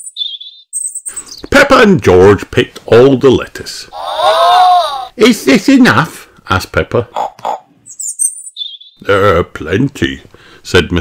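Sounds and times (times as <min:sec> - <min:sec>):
small birds chirping: 0:00.0 - 0:01.5, 0:07.1 - 0:09.2
narrator speaking: 0:01.5 - 0:07.2.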